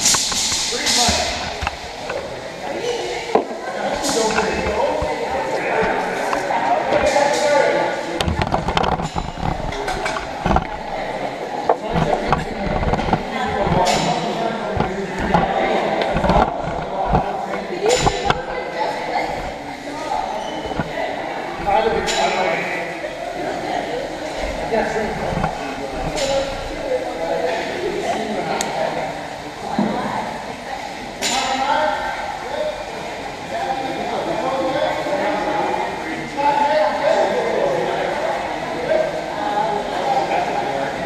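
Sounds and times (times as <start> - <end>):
chatter of many voices: 0.0 - 41.0
low thumps: 8.1 - 22.2.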